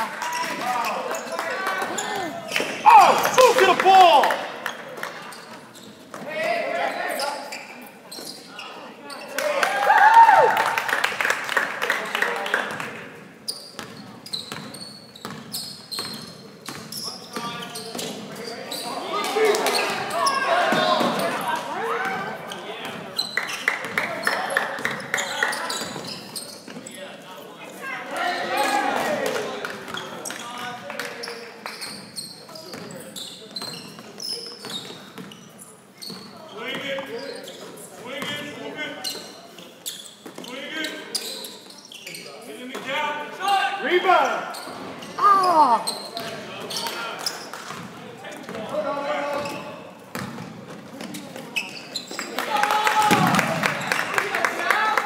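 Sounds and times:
indistinct shouts: 0:02.1 - 0:04.4.

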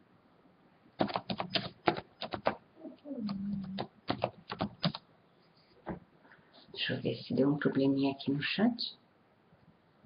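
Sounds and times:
computer keyboard typing: 0:01.0 - 0:02.6, 0:03.2 - 0:05.0.

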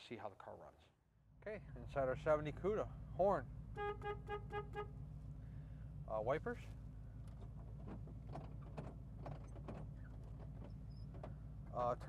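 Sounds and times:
car engine humming: 0:01.4 - 0:12.0.

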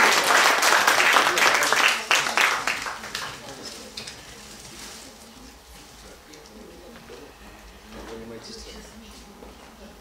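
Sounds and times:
faint murmur of voices: 0:01.1 - 0:10.0.

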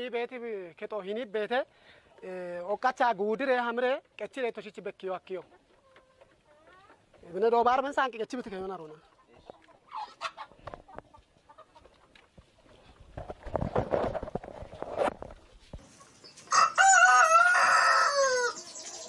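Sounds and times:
scraping and rustling: 0:11.8 - 0:16.5
rooster crowing: 0:16.5 - 0:18.7.

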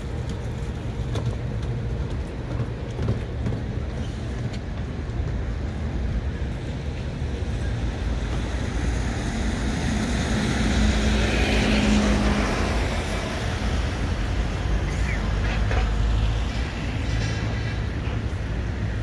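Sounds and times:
street traffic rumble: 0:00.0 - 0:19.0.

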